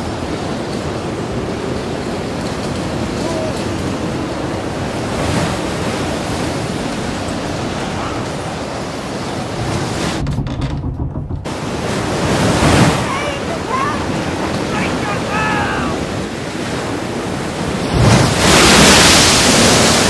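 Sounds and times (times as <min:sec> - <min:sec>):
ocean waves and surf: 0:00.0 - 0:10.3, 0:11.2 - 0:20.0
wind: 0:00.0 - 0:20.0.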